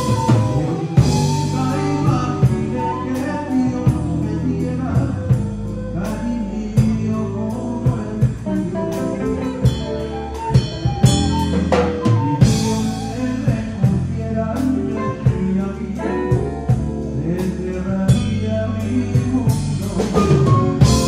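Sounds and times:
drum kit: 0.0 - 21.0
electric guitar: 0.0 - 21.0
flute playing melody: 0.0 - 21.0.

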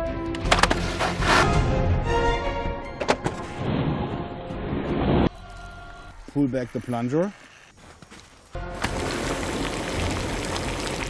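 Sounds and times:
background music: 0.0 - 6.2, 8.6 - 11.0.

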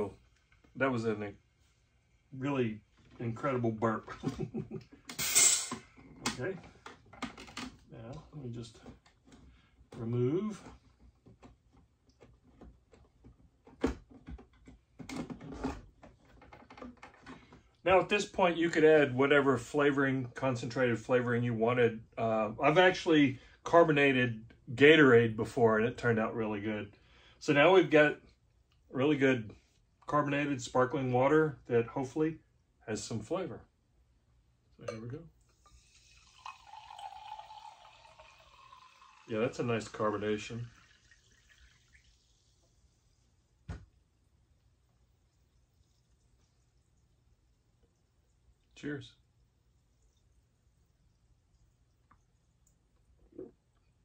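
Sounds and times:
plastic clicks and creaks: 13.8 - 17.5
sparkling water pouring into glass: 35.6 - 42.9.

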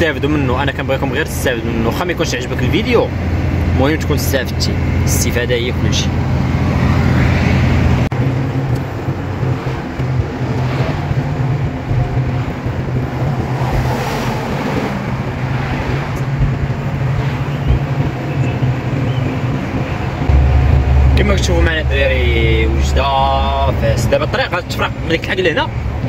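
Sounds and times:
diesel engine drone: 0.0 - 26.0
road noise: 0.0 - 26.0.

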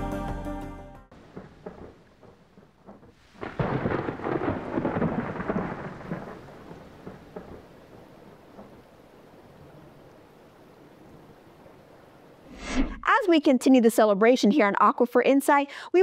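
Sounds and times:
steady rain falling: 1.1 - 12.5
thunder rumbling: 1.1 - 13.3.

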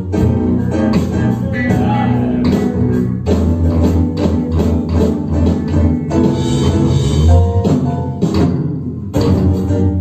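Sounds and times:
live band playing a groove: 0.0 - 10.0.

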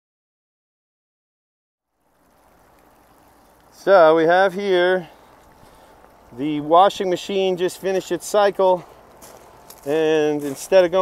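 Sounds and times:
water pouring from a drain hose: 2.0 - 11.0.

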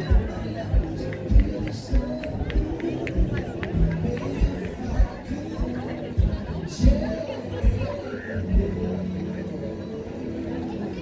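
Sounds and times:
kick-drum beat: 0.1 - 7.9.

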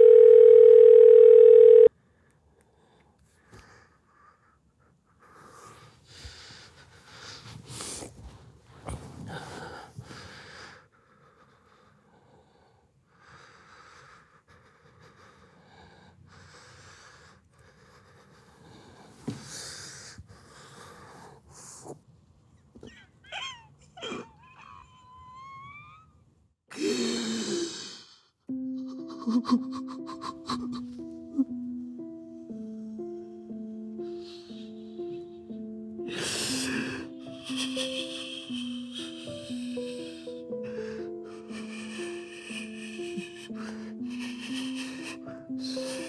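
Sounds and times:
high-pitched whimpers: 22.8 - 26.1
man crying: 28.7 - 31.6, 36.0 - 46.0.

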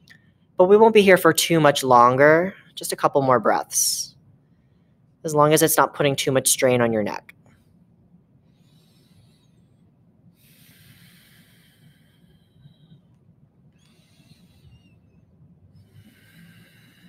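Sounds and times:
person breathing slowly: 8.4 - 17.0.

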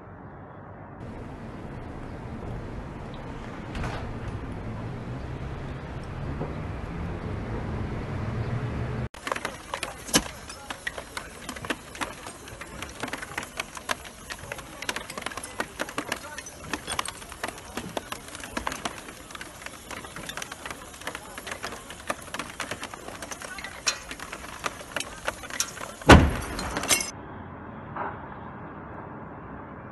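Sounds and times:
fire crackling and popping: 9.2 - 27.1.

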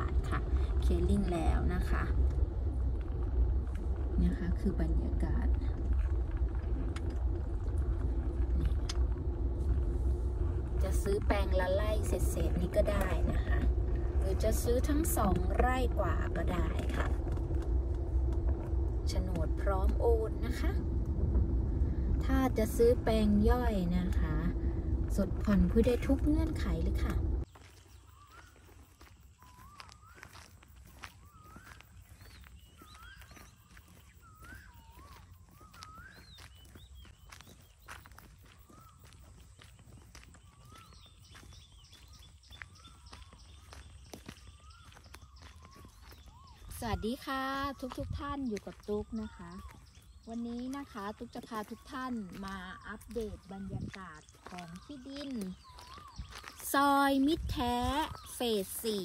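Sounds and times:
footsteps on dirt road: 0.0 - 59.0
low steady rumble: 0.0 - 59.0
birds whistling: 21.7 - 59.0.

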